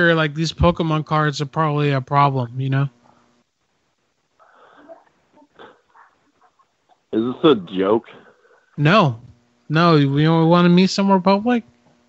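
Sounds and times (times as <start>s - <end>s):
faint breathing over telephone: 4.4s - 6.1s, 8.1s - 8.8s.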